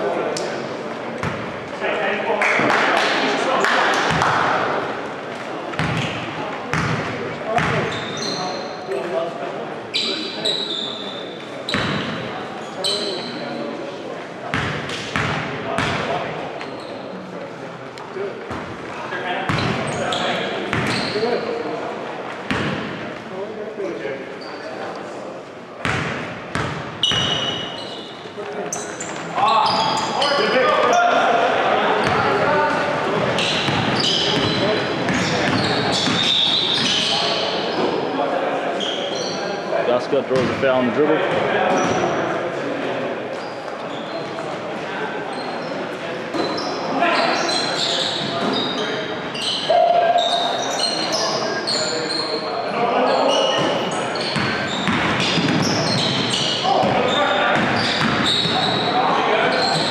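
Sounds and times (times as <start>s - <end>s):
players' voices: 0.0s - 26.4s, 27.0s - 59.9s
sneaker squeaks: 5.8s - 9.1s, 9.9s - 13.6s, 16.6s - 17.2s, 19.4s - 21.6s, 24.3s - 25.0s, 25.8s - 31.2s, 32.0s - 38.1s, 38.8s - 39.6s, 41.3s - 42.2s, 43.3s - 44.6s, 45.3s - 59.9s.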